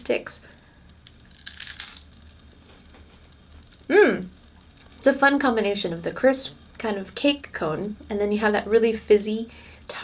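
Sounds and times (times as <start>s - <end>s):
crunchy bite into wafer cone: 1.0s - 2.1s.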